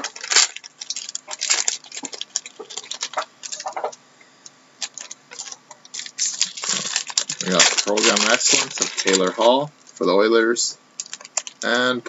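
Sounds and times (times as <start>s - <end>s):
trading cards rustling: 0.0s - 4.0s, 4.8s - 9.6s.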